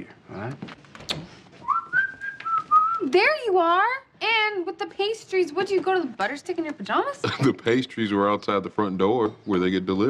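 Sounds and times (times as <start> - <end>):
person whistling a tune: 1.6 - 3.0.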